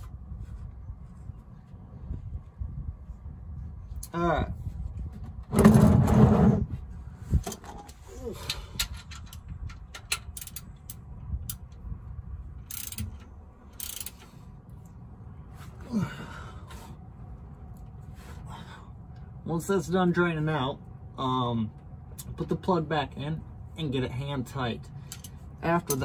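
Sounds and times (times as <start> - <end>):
plastic pan scraping on concrete: 5.5 - 6.8
wrench clicks and knocks: 8.8 - 11.8, 12.6 - 14.4.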